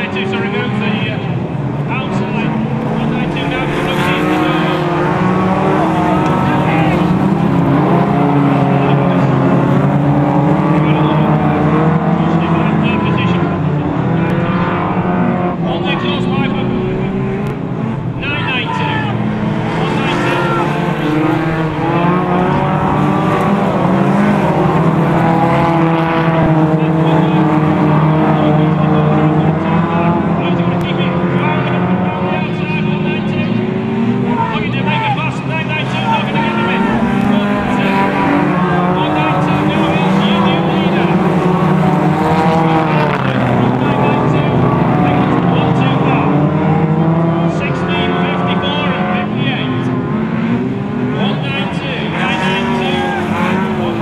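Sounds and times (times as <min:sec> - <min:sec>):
race car engines: 0:00.0 - 0:54.0.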